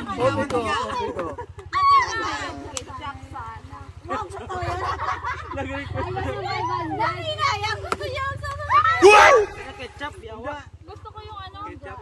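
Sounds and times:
group of people chattering: 0.0 - 10.2.

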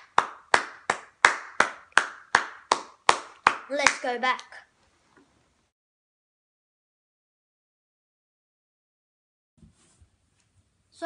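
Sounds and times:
child clapping hands: 0.0 - 4.6.

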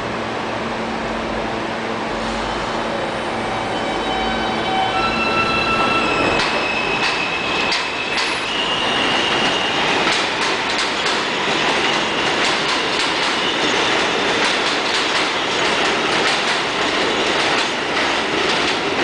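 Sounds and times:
train whining: 0.0 - 19.0.

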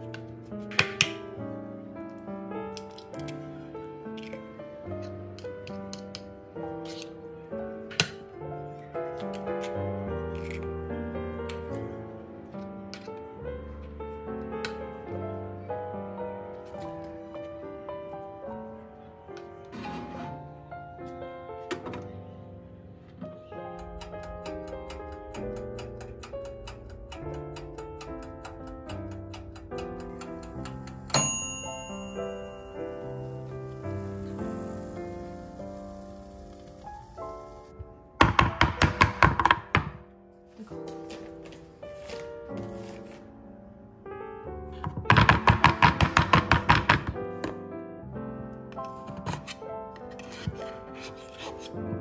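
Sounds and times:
light background music: 0.0 - 52.0
timer bell ding: 31.1 - 33.2.

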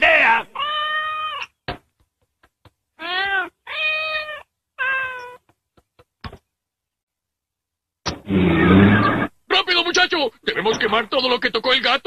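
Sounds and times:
cartoon cats meowing: 0.6 - 1.6, 3.0 - 5.4.

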